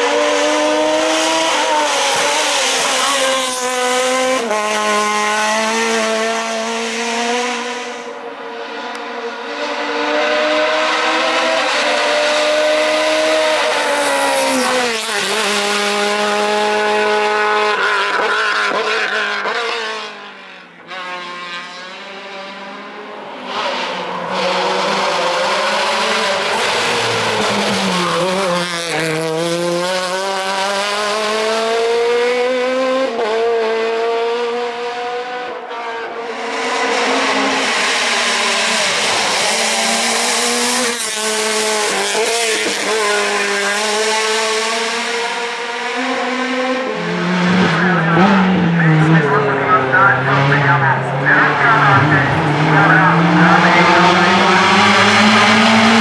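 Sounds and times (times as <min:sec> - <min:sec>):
race car engine revving: 0:00.0 - 0:56.0.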